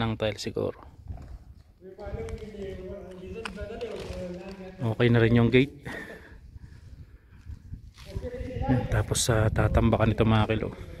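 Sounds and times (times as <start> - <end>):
footsteps on concrete and grit: 1.1 - 5.0.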